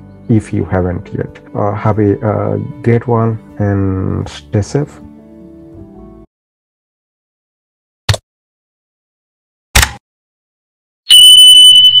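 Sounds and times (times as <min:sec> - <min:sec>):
notification bell ringing tone: 0:11.1 - 0:12.0.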